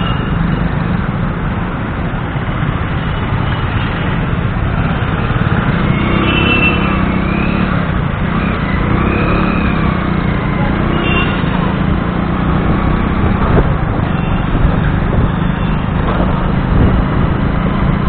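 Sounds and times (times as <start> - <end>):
traffic sounds: 0.0 - 18.0
motorcycle engine and wind rumble: 0.3 - 18.0.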